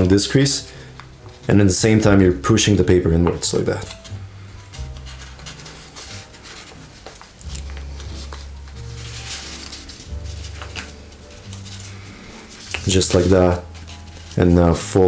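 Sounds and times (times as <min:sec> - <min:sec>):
background music with bass line: 0:00.0 - 0:15.0
paper crinkling and rustling: 0:00.0 - 0:15.0.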